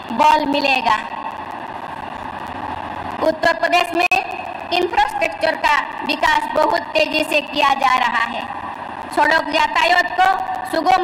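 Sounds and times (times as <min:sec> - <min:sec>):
large hall hum and hiss: 0:00.0 - 0:11.0.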